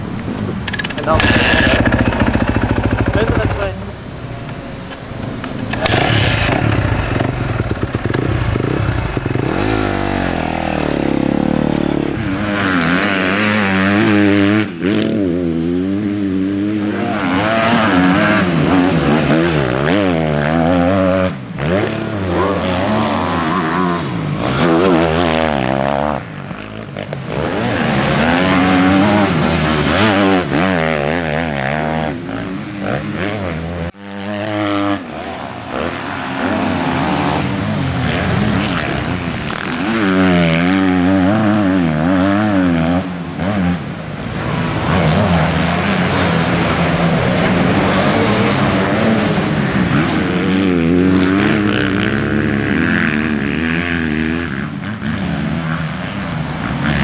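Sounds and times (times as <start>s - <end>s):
motocross bike engine revving: 0.7s - 57.0s.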